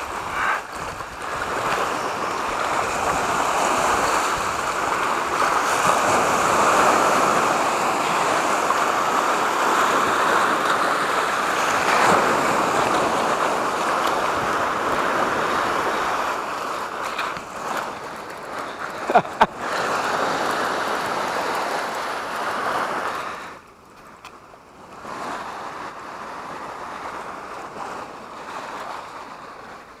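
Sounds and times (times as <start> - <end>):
sea waves breaking on rocks: 0.0 - 30.0.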